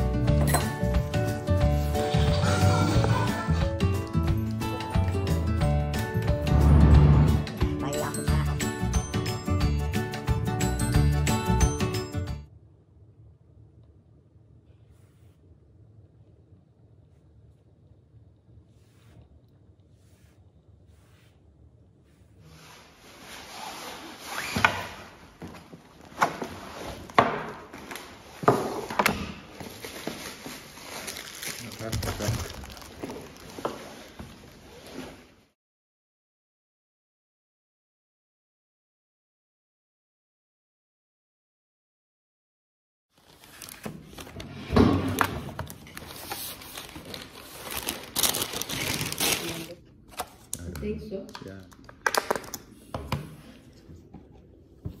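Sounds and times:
paper and plastic rustling: 0:29.5 - 0:35.3, 0:43.2 - 0:50.7.

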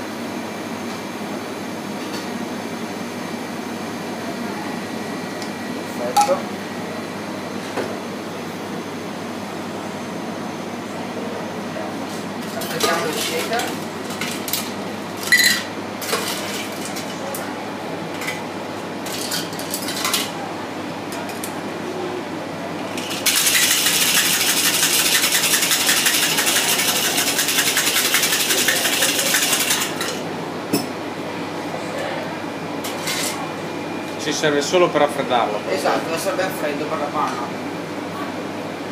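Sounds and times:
ice rattling in cocktail shaker: 0:23.0 - 0:30.1.

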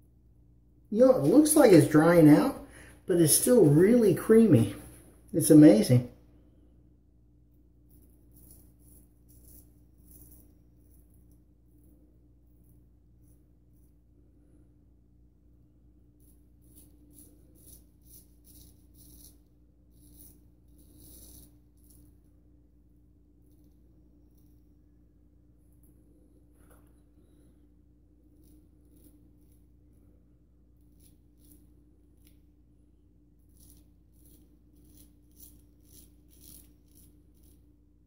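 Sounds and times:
steady low hum: 0:00.0 - 0:38.0
straight razor scraping stubble: 0:16.6 - 0:22.1, 0:33.4 - 0:37.6.

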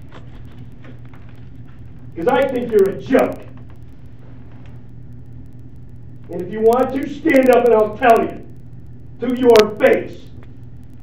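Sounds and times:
faint background noise: 0:00.0 - 0:11.0
steady low hum: 0:00.0 - 0:11.0.

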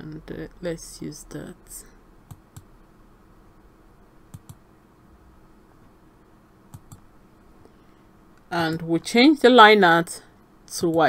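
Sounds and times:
computer mouse clicking: 0:04.3 - 0:04.6, 0:06.7 - 0:07.1.

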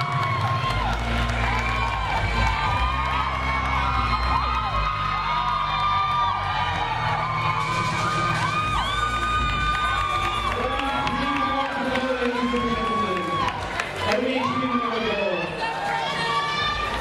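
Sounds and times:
audience cheering and screaming: 0:00.0 - 0:17.0.

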